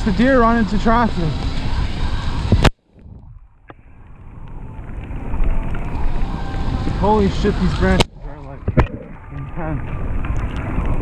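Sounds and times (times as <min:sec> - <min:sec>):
mountain bike tyre and trail noise: 0:00.0 - 0:11.0
wind on microphone: 0:00.0 - 0:11.0.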